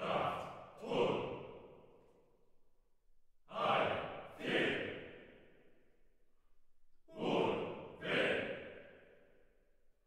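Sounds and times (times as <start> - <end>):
choir shouting in unison: 3.5 - 5.2, 7.1 - 8.9.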